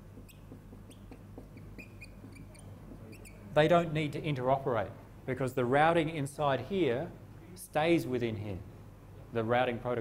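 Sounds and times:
low room hum: 0:00.0 - 0:10.0
faint high-pitched squeaks: 0:00.2 - 0:03.5.

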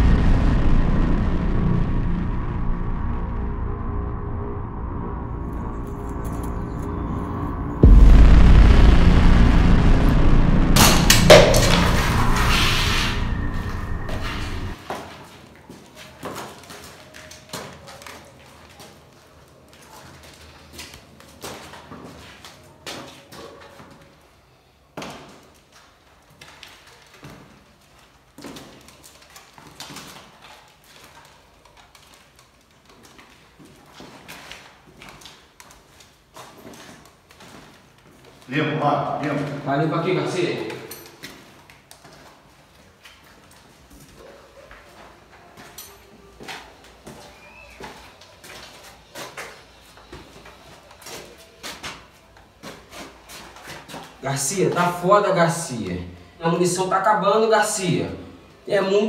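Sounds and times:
sharp bang: 0:00.0 - 0:14.8
gunfire and explosion: 0:07.8 - 0:14.8.

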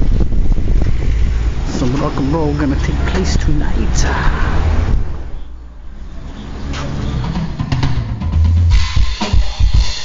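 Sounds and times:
vehicle engine rumble: 0:00.0 - 0:08.6.

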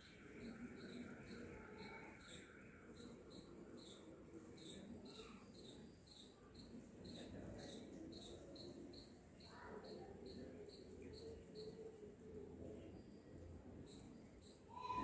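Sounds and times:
faint high chirps: 0:00.0 - 0:15.0.

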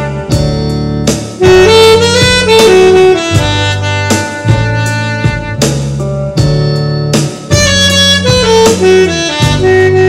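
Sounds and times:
alto saxophone playing held notes: 0:00.0 - 0:10.0
backing track bass and drums: 0:00.0 - 0:10.0.

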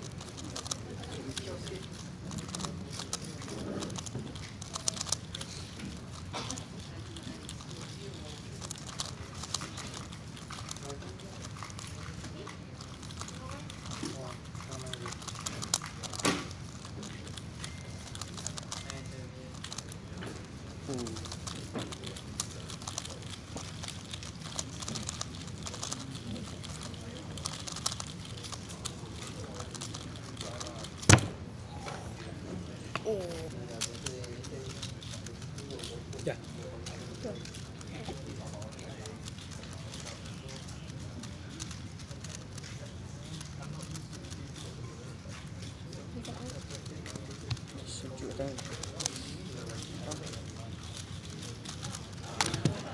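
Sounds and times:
plastic puzzle clicking: 0:00.0 - 0:06.7
puzzle cube plastic clicks: 0:00.0 - 0:20.1, 0:20.9 - 0:29.0, 0:29.6 - 0:31.3, 0:37.1 - 0:42.6, 0:48.6 - 0:52.9.

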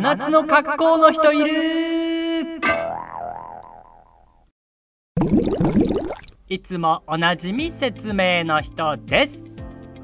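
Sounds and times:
water bubbling and gurgling: 0:05.2 - 0:06.4.

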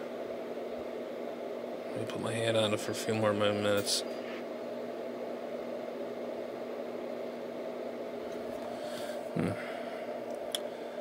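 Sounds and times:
equipment hum and hiss: 0:00.0 - 0:11.0
person murmuring hmm: 0:09.3 - 0:09.8.

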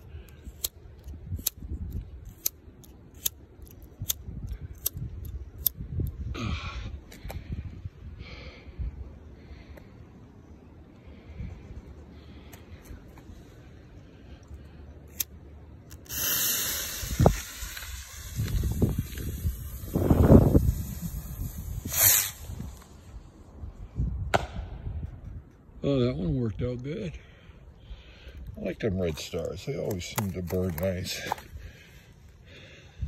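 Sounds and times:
bottle rocket motor hissing: 0:15.9 - 0:23.0
firework star charge popping: 0:15.9 - 0:23.1.

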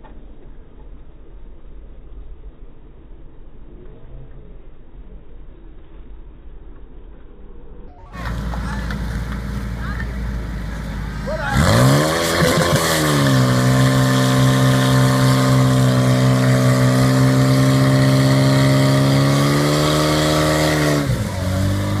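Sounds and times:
pump engine revving: 0:08.1 - 0:22.0.

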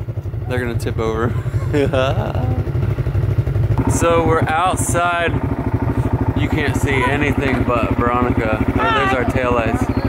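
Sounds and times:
atv engine running: 0:00.0 - 0:10.0.

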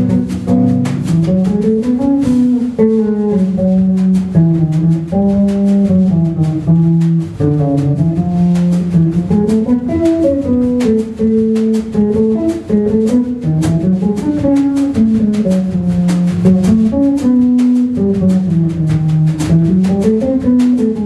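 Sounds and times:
electric bass guitar melody: 0:00.0 - 0:21.0.

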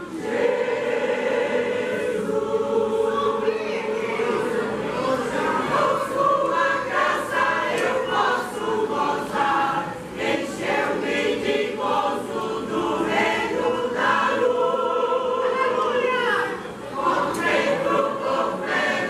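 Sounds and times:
choir singing a hymn: 0:00.0 - 0:19.0.

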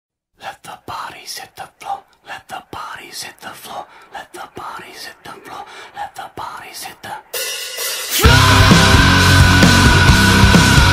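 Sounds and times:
person whispering: 0:00.4 - 0:07.4.

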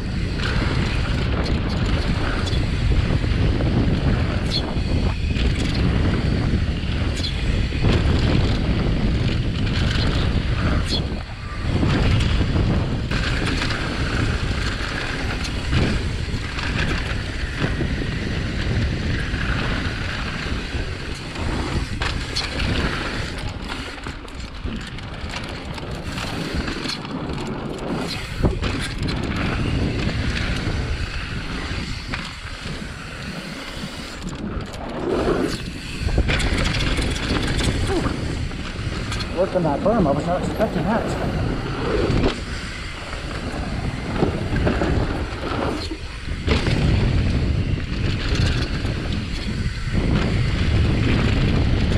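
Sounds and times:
bike clacking and rattling: 0:00.0 - 0:51.9
wind rushing over microphone: 0:00.0 - 0:51.9.

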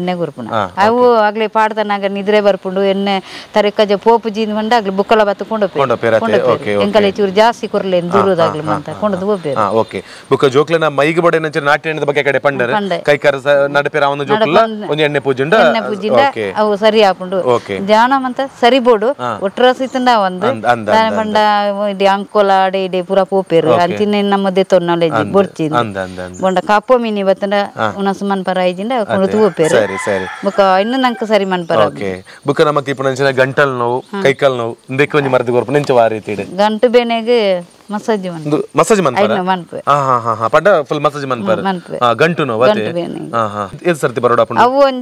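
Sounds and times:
woman talking: 0:00.0 - 0:09.6, 0:12.6 - 0:13.0, 0:14.3 - 0:14.9, 0:15.5 - 0:32.0, 0:36.5 - 0:38.4, 0:39.1 - 0:39.8, 0:41.4 - 0:42.0, 0:42.6 - 0:43.4, 0:44.6 - 0:45.0
person talking: 0:00.4 - 0:01.2, 0:05.6 - 0:09.9, 0:12.5 - 0:13.0, 0:14.2 - 0:16.7, 0:19.2 - 0:19.5, 0:20.2 - 0:21.7, 0:23.5 - 0:24.4, 0:25.0 - 0:26.7, 0:27.7 - 0:28.1, 0:28.9 - 0:30.3, 0:31.7 - 0:32.2, 0:34.2 - 0:36.4, 0:38.4 - 0:40.6, 0:41.2 - 0:43.8
rooster crowing: 0:29.1 - 0:32.1.

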